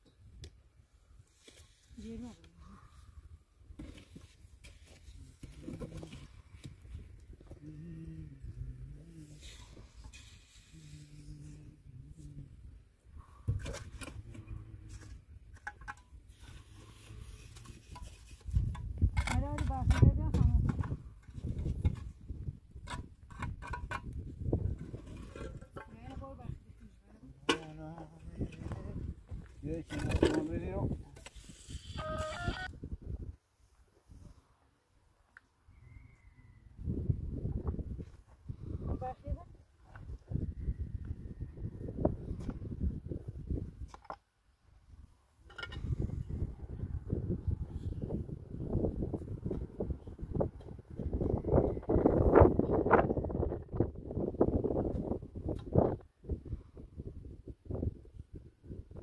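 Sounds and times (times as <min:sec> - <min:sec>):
shovel scraping mortar: 0:09.2 - 0:11.6, 0:13.6 - 0:22.1, 0:24.7 - 0:26.2, 0:29.9 - 0:32.6.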